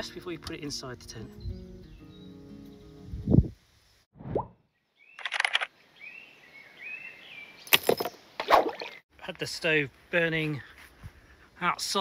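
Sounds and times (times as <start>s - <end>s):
music with held chords: 0.0s - 3.2s.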